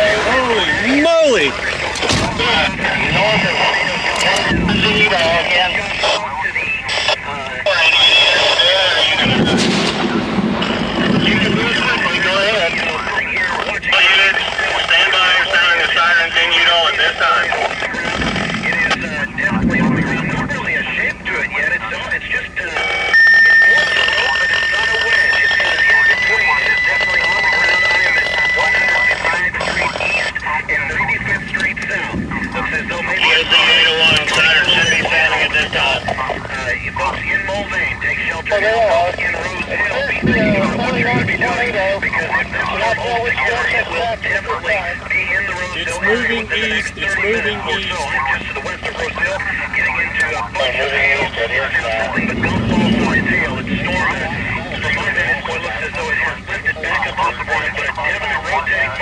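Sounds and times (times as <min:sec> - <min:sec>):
indistinct voices over a radio: 0:00.0 - 0:59.0
high electronic tone: 0:22.7 - 0:30.4.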